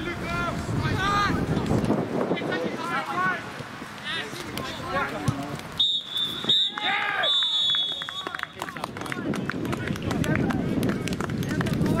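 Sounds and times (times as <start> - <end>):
rumbling microphone noise: 0.0 - 5.8, 8.7 - 12.0.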